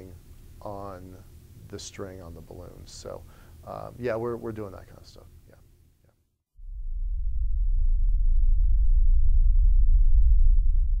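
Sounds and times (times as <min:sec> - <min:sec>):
deep low rumble: 0:06.6 - 0:11.0.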